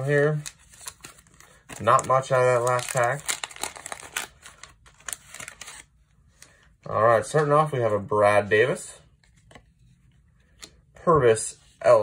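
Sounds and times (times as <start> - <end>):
wrapper crinkling: 0.4 - 5.8.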